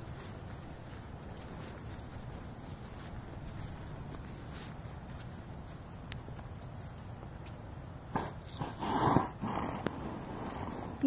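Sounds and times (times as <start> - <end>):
horse snorting: 8.1 - 11.0.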